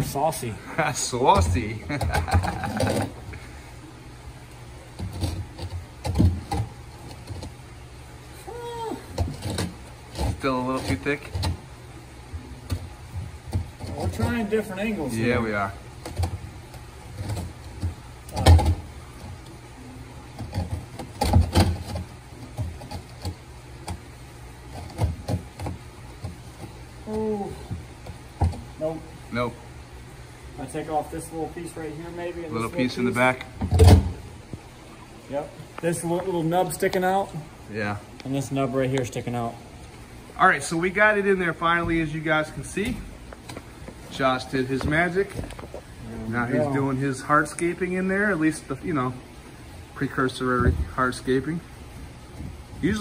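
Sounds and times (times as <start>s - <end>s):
low steady hum: 0.0s - 53.0s
person laughing: 1.8s - 3.2s.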